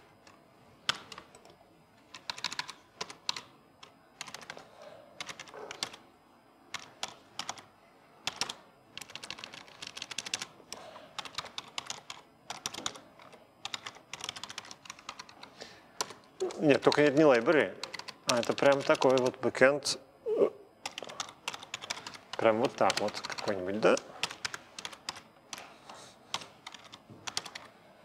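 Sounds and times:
computer keyboard typing: 0.0s - 6.0s, 6.7s - 19.5s, 20.8s - 27.7s.

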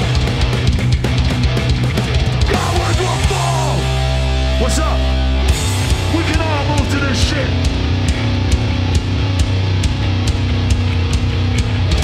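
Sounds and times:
punk band playing: 0.0s - 12.0s.

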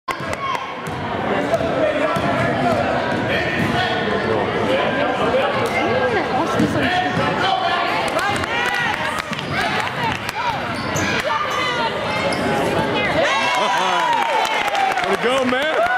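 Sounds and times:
voices echoing in hall: 0.2s - 15.9s
shoe squeaks: 10.6s - 12.8s.

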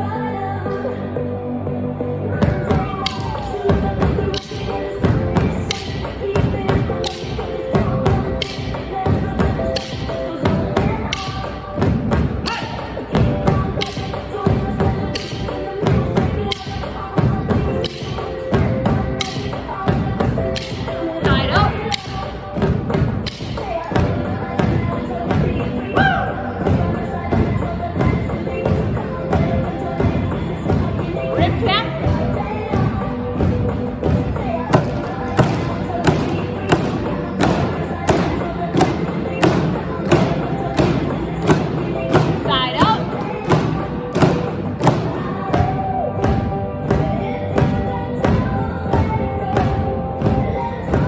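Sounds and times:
upbeat pop song: 0.0s - 51.0s
drumsticks beating exercise balls: 2.4s - 51.0s.

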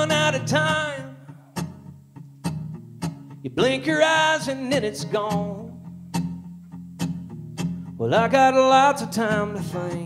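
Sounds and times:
acoustic guitars playing softly: 0.0s - 10.0s
sharp guitar strums: 0.0s - 10.0s.

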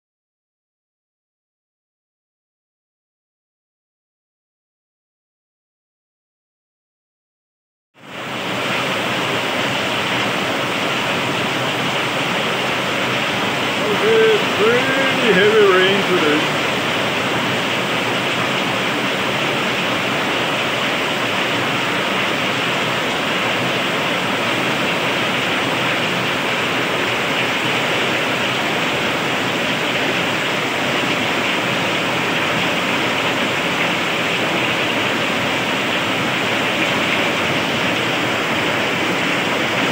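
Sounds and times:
heavy rain on roofs and pavement: 8.0s - 39.9s.

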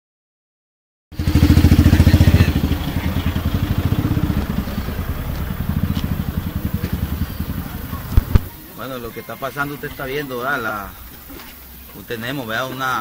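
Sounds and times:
vehicle engine running: 1.2s - 8.7s.

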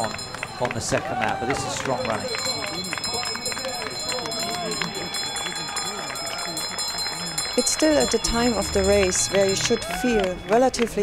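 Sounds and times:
indistinct voices talking: 0.0s - 11.0s
faint steady high tones: 2.0s - 10.6s.

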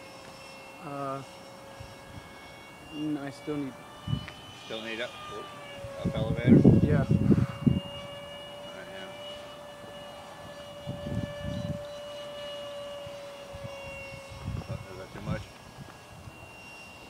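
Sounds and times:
model jet fan whine: 0.0s - 17.0s
wind buffeting microphone: 4.0s - 8.6s, 10.4s - 16.4s.

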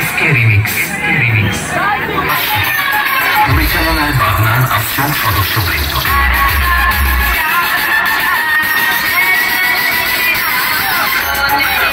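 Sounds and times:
loud dance music with heavy bass: 2.4s - 9.3s.

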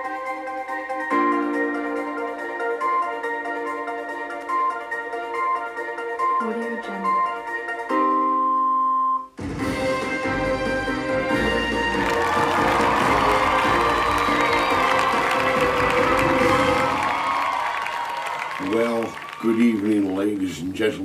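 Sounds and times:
show intro music: 9.4s - 19.0s
audience applause and cheering: 9.6s - 21.0s
man speaking: 18.6s - 21.0s.

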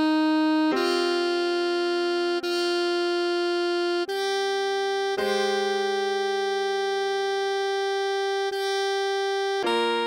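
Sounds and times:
sustained keyboard chord: 0.0s - 10.0s.

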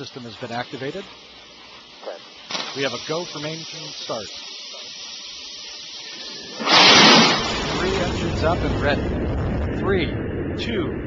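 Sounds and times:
steady hiss: 0.0s - 10.0s
rocket engines roaring: 5.4s - 11.0s.

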